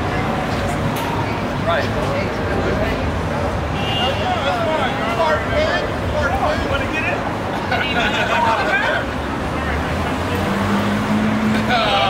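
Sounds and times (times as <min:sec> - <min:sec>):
people talking: 0:00.0 - 0:10.9, 0:11.5 - 0:12.0
traffic rumble: 0:00.0 - 0:12.0
vehicle droning: 0:00.0 - 0:12.0.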